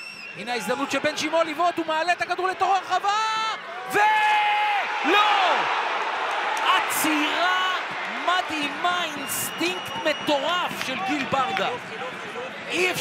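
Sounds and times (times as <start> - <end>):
stadium crowd noise: 0.0 - 13.0
man shouting excitedly: 0.5 - 5.7, 6.6 - 9.8.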